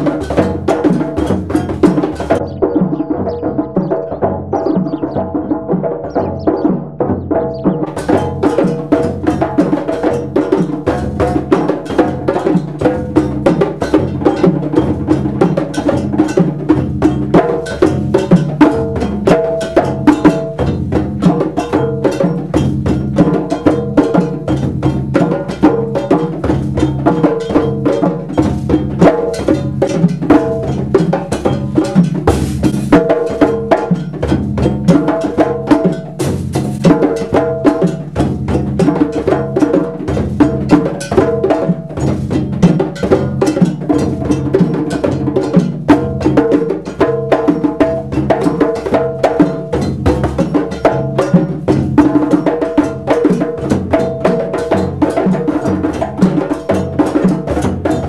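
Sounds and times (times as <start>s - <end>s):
djembes played by hand: 0.0s - 58.0s.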